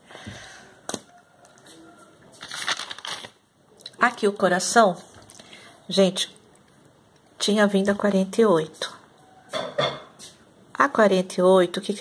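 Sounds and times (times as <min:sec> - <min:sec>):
paper rustling: 0:02.3 - 0:03.4.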